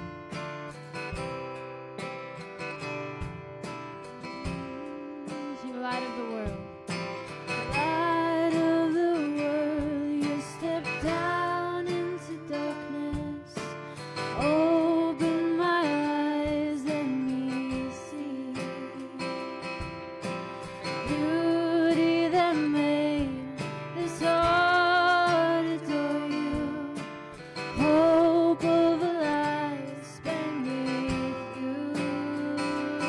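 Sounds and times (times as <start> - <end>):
electric guitar: 0.0 - 33.0
strummed acoustic guitar: 0.0 - 33.0
women singing: 7.6 - 19.4, 20.9 - 33.0.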